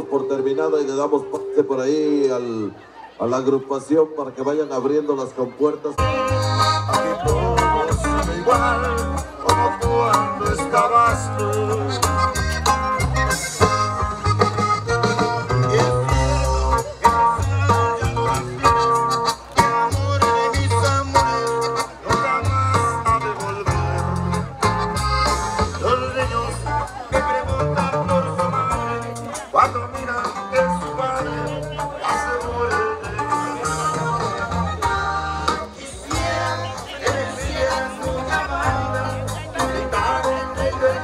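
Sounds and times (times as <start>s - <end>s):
band playing dance music: 0.0s - 2.9s, 5.9s - 41.0s
guitar: 0.0s - 3.0s, 5.9s - 41.0s
bass notes: 6.0s - 41.0s.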